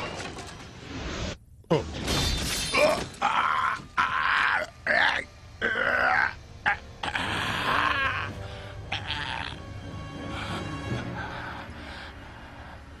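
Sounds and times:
man groaning in pain: 2.8 - 9.6.

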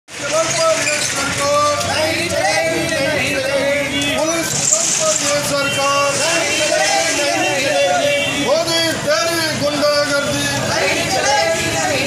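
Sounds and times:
busy street noise: 0.1 - 12.0
men's voices: 0.1 - 12.0.

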